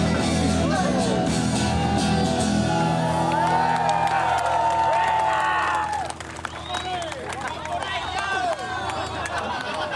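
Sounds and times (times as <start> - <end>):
crowd talking and calling out: 0.0 - 9.9.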